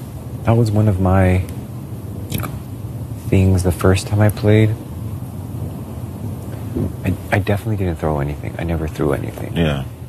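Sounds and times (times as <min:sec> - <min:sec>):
wind rumble on microphone: 0:00.0 - 0:10.0
man's voice: 0:07.1 - 0:09.9.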